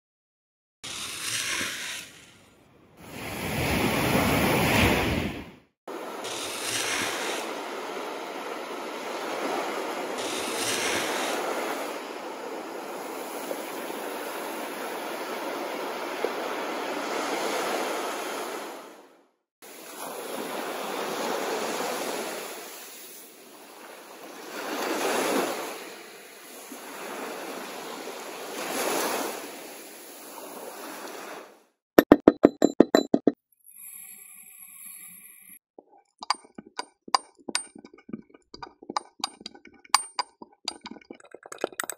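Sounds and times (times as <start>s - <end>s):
ocean wave washing over sand: 3.0s - 19.0s, 19.6s - 31.6s.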